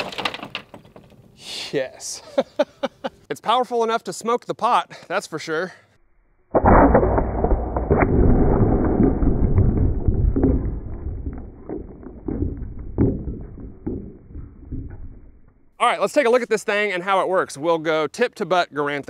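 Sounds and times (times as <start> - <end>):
crackles of breaking pieces: 0.0 - 1.3, 6.5 - 15.8
deep boom and low rumble: 6.5 - 15.8.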